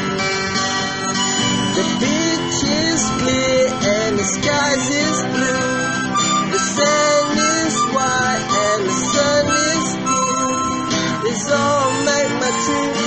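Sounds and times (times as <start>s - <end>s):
harmonica melody: 0.0s - 13.0s
strummed acoustic guitar: 0.0s - 13.0s.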